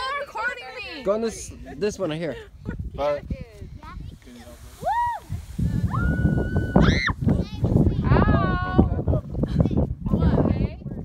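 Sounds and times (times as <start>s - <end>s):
sled sliding on sand: 3.8s - 9.6s
children squealing and calling out: 5.9s - 7.4s.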